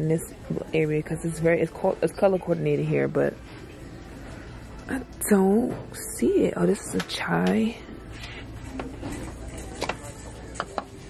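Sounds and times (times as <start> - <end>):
low store background: 0.0 - 11.0.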